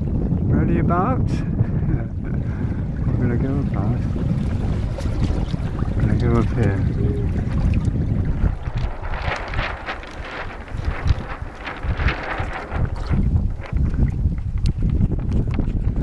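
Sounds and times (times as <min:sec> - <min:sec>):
water washing along hull: 0:00.0 - 0:16.0
wind buffeting microphone: 0:00.0 - 0:16.0
rough rushing with crackles: 0:01.3 - 0:16.0.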